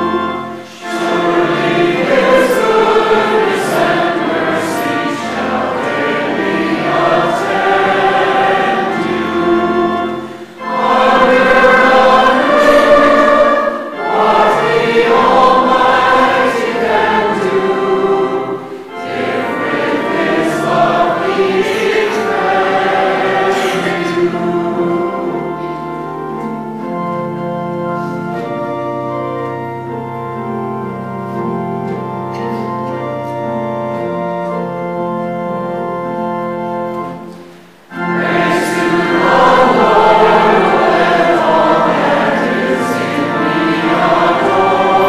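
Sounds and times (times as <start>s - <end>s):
congregation singing a hymn: 0.0s - 45.0s.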